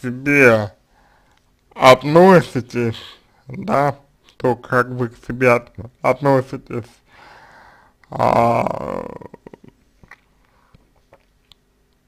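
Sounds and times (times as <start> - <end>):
man breathing in: 0.9 - 1.4, 7.1 - 8.0
man sighing: 7.1 - 9.7.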